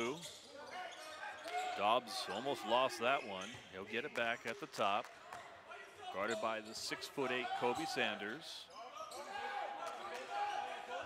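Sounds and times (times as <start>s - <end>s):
sneakers squeaking: 0.0s - 4.6s, 7.7s - 11.0s.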